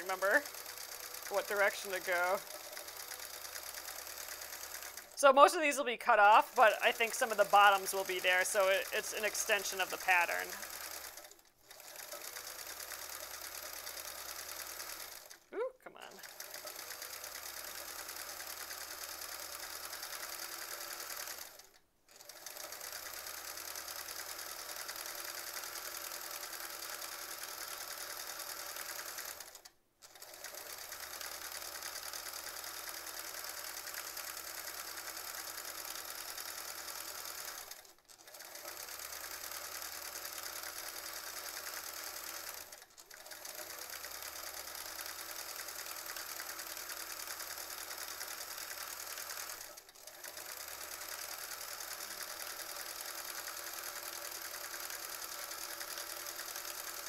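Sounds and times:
sewing machine stitching: 0.0 - 57.0.

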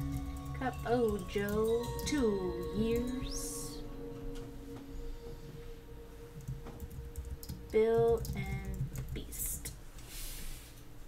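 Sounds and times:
short pitched tone: 3.1 - 8.0.

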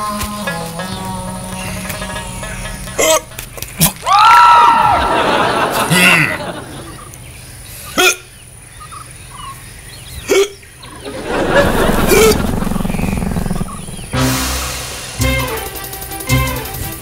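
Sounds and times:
burst of music: 0.0 - 5.8, 13.7 - 17.0
man hiccuping: 8.0 - 8.3, 10.3 - 10.6.

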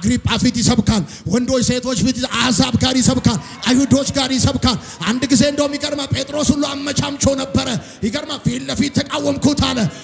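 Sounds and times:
man preaching through microphone: 0.0 - 10.0.

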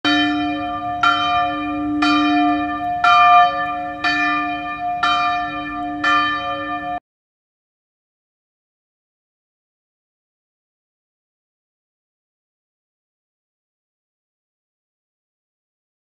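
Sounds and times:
church bell tolling: 0.0 - 7.0.

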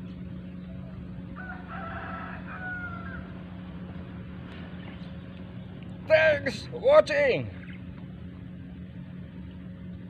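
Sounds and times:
steady low hum: 0.0 - 10.0
rooster crowing: 1.3 - 3.5.

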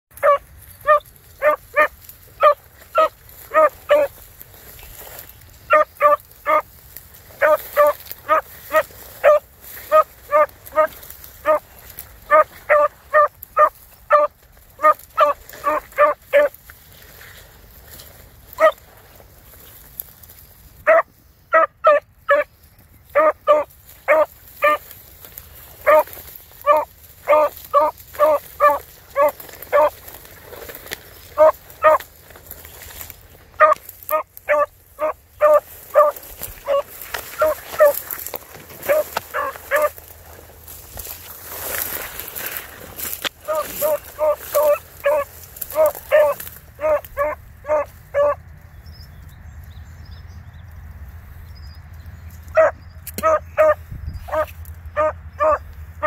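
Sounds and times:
dog yipping: 0.2 - 4.1, 5.7 - 6.6, 7.4 - 11.6, 12.3 - 16.5, 18.6 - 18.8, 20.9 - 22.5, 23.2 - 24.8, 25.8 - 29.9, 31.4 - 32.0, 33.6 - 38.0, 38.8 - 39.9, 43.5 - 48.4, 52.6 - 55.6.

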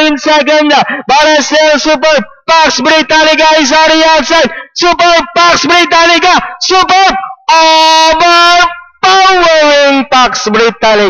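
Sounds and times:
race caller shouting: 0.0 - 11.0.

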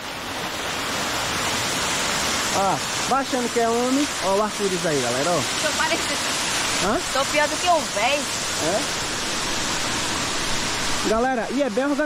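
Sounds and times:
waterfall splashing on rock: 0.0 - 12.0.

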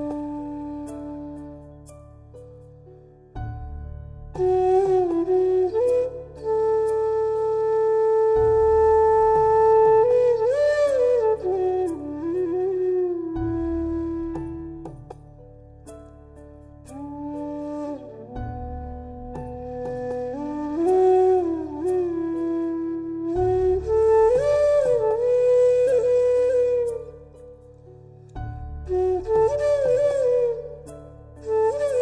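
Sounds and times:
flute melody: 0.0 - 32.0.

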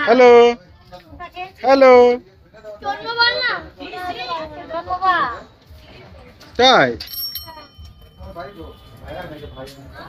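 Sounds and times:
child talking: 2.8 - 5.4.

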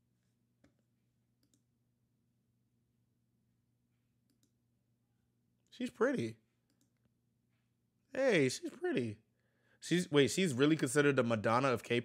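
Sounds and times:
computer mouse clicks: 1.4 - 1.7, 4.2 - 4.6
man speaking: 5.7 - 6.5, 8.1 - 12.0.

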